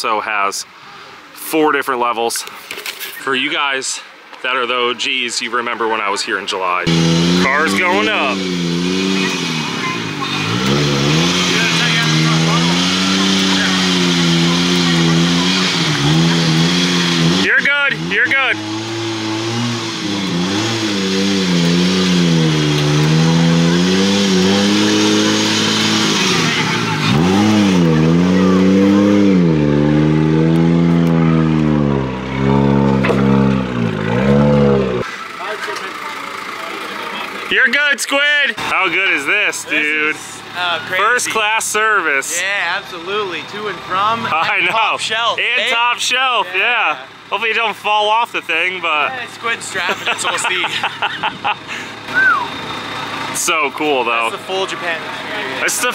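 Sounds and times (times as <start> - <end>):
car engine revving: 6.8 - 37.7, 38.4 - 55.9.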